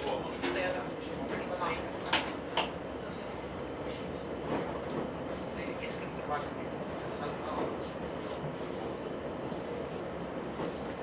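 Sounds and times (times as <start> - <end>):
railcar rumbling on rails: 0.0 - 11.0.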